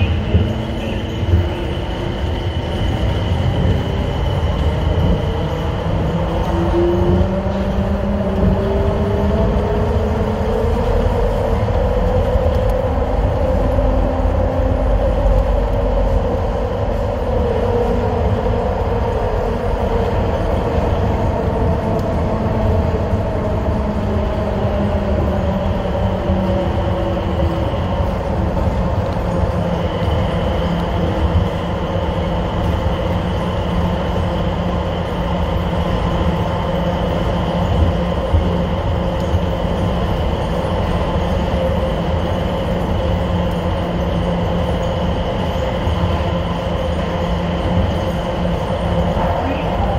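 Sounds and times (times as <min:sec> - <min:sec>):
train rumble in tunnel: 0:00.0 - 0:49.9.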